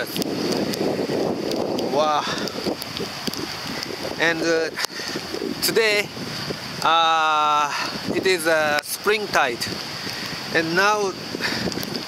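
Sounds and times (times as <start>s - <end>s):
stream rushing into the sea: 0.0s - 12.0s
wind buffeting microphone: 0.0s - 12.0s.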